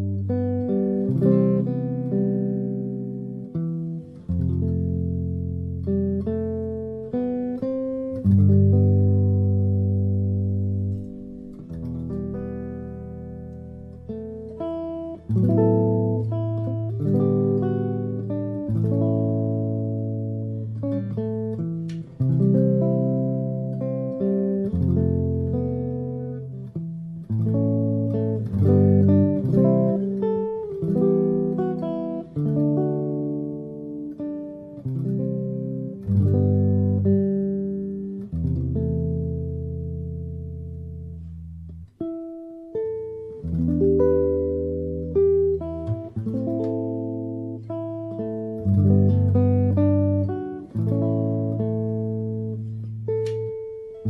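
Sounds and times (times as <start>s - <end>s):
jazz guitar chord-melody playing: 0.0s - 54.0s.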